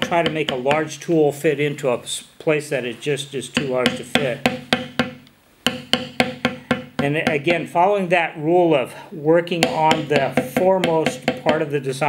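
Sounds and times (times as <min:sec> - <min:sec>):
mallet tapping metal stamp into leather: 0:03.6 - 0:07.6, 0:09.6 - 0:11.6.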